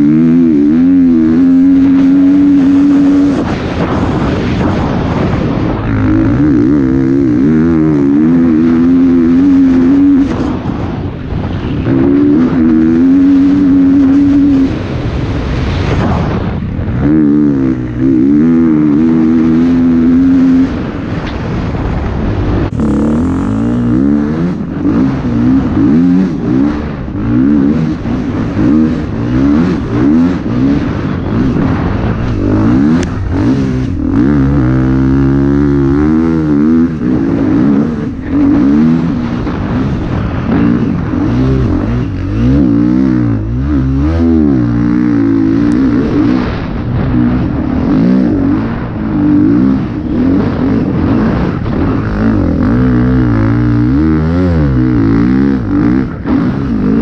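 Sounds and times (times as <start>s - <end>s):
dirt bike engine revving: 0.0s - 57.0s
rush of wind: 0.0s - 57.0s.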